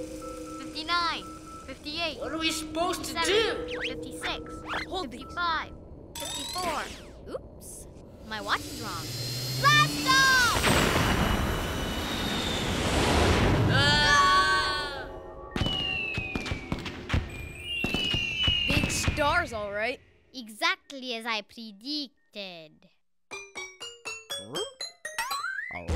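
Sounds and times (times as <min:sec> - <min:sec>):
cartoon rocket rushing roar: 0:08.4 - 0:14.9
falling whistle tones: 0:09.2 - 0:14.7, 0:15.5 - 0:19.3
cartoon characters yelling: 0:13.7 - 0:15.1.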